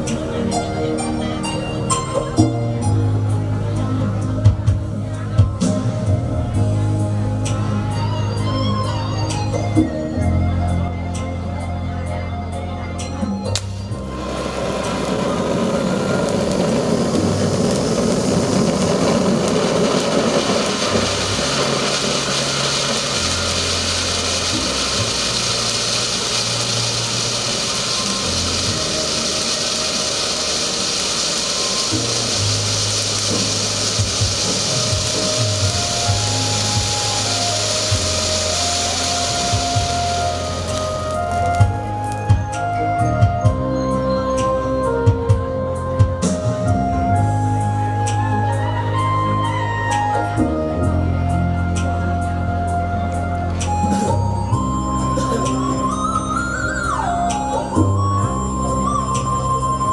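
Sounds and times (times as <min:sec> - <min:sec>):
background music: 0:00.0 - 0:59.9
spark fountains hissing: 0:13.5 - 0:42.7, 0:53.7 - 0:59.9.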